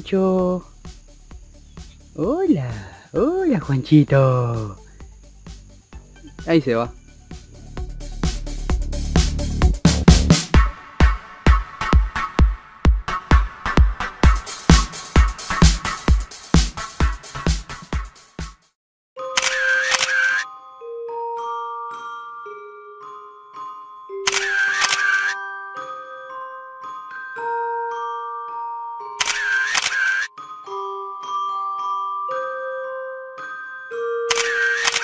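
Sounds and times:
chime-like music notes: 0:19.2 - 0:24.3, 0:25.4 - 0:29.2, 0:30.3 - 0:34.3
sharp clicks: 0:24.3 - 0:25.4, 0:29.2 - 0:30.3, 0:34.3 - 0:35.0.

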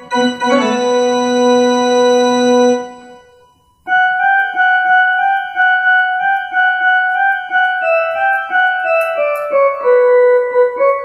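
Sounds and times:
electronic keyboard melody: 0:00.0 - 0:11.0.

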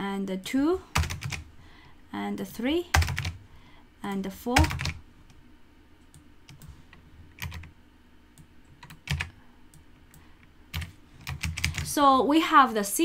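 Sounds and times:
computer keyboard keystrokes: 0:01.0 - 0:01.4, 0:02.9 - 0:03.4, 0:04.6 - 0:05.0, 0:07.4 - 0:07.7, 0:08.4 - 0:11.9.

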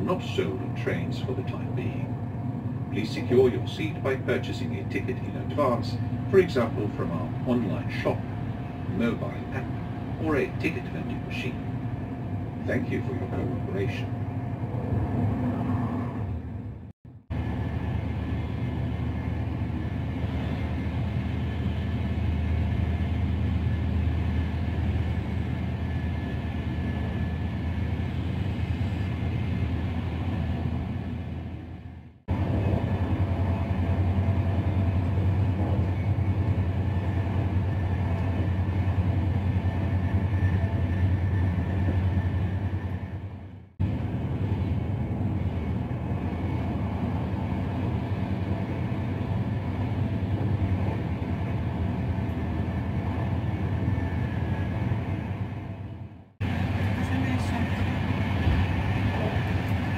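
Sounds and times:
train rumble inside carriage: 0:00.0 - 0:59.9.

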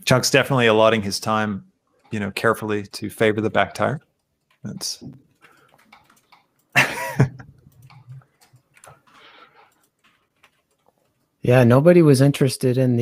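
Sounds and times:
mouse and keyboard clicks: 0:04.4 - 0:06.7, 0:07.5 - 0:11.2.

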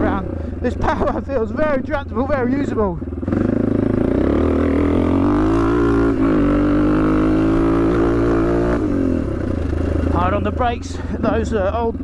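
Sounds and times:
motorcycle engine revving: 0:00.0 - 0:12.0.

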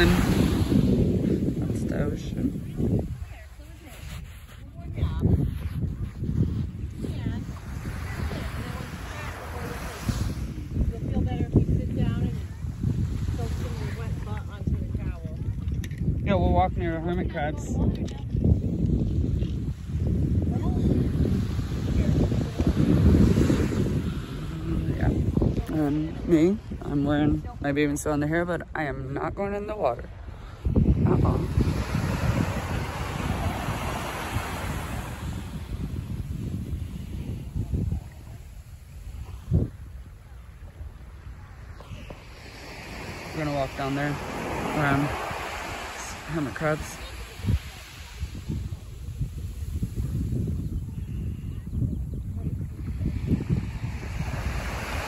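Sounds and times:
small waves washing onto sand: 0:00.0 - 0:27.6, 0:29.7 - 0:55.0
wind buffeting microphone: 0:00.0 - 0:55.0.

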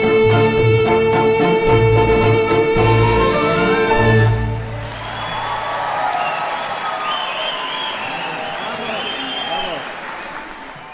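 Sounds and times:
audience applauding: 0:04.3 - 0:10.9.

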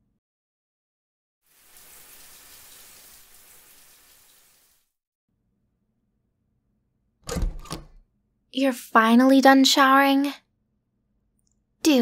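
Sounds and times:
shower water running: 0:01.5 - 0:05.0
loud clicks and knocks: 0:07.2 - 0:08.0.

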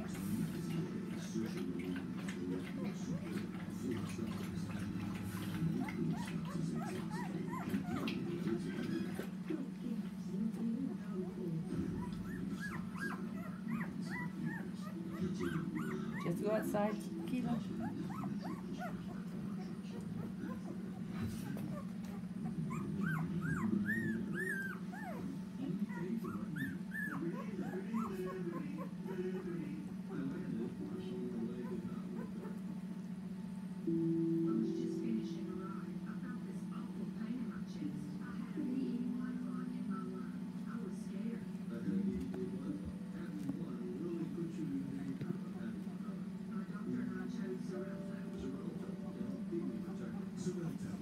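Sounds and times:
steady low hum: 0:00.0 - 0:51.0
puppies squeaking and whimpering: 0:02.6 - 0:09.4, 0:11.7 - 0:30.2, 0:31.6 - 0:32.7.

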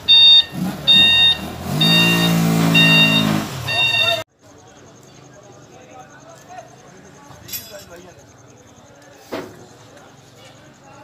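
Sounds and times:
reversing alarm beeping: 0:00.0 - 0:04.2.

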